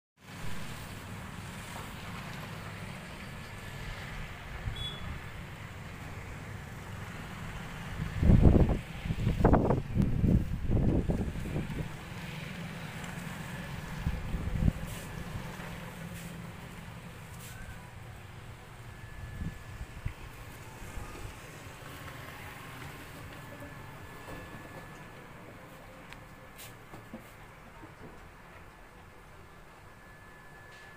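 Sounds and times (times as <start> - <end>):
wind buffeting microphone: 8.0 - 12.0.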